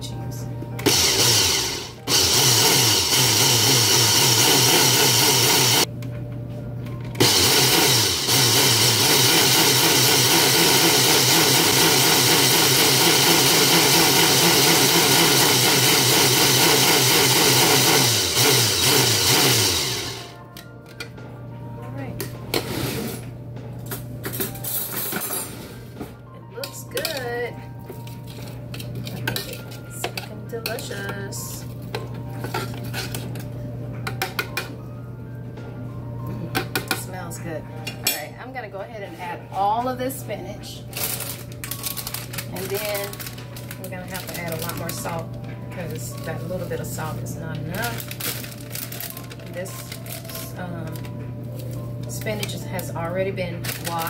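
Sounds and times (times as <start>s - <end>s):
food processor motor running: 0.8s - 5.9s, 7.2s - 20.4s.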